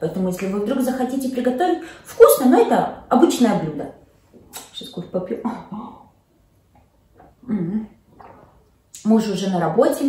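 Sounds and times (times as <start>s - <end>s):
woman sipping from mug: 6.7s - 8.9s
voiced mm: 6.8s - 9.1s.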